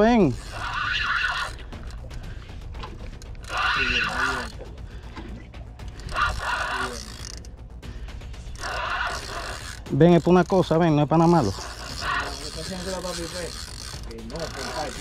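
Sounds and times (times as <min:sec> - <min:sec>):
fishing reel gears whining: 0:00.0 - 0:15.0
steady rumble: 0:00.0 - 0:15.0.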